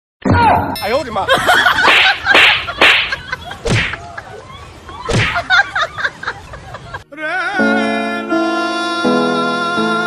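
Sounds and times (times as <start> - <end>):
sharp slapping hits: 1.8 - 4.0, 5.1 - 5.5.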